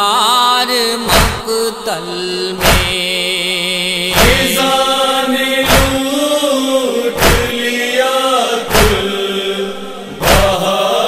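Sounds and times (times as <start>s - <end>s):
voices singing wordless melody: 0.0s - 11.0s
chest-beating thumps: 1.1s - 1.5s, 2.6s - 3.0s, 4.2s - 6.1s, 7.2s - 7.6s, 8.7s - 9.2s, 10.2s - 10.6s.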